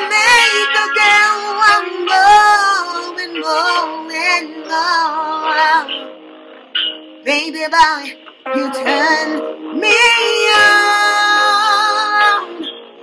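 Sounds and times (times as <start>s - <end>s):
backing beat: 0.0s - 13.0s
woman singing vocal runs: 7.3s - 12.8s.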